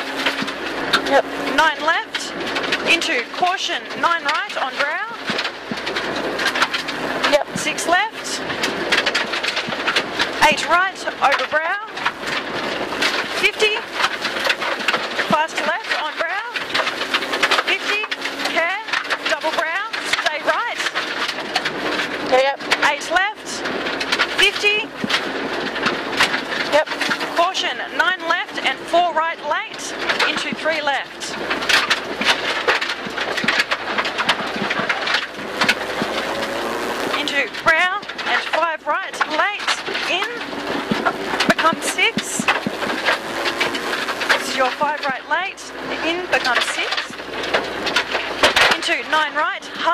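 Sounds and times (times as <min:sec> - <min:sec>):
gravel clattering against underbody: 0:00.0 - 0:49.9
rally car engine revving: 0:00.0 - 0:49.9.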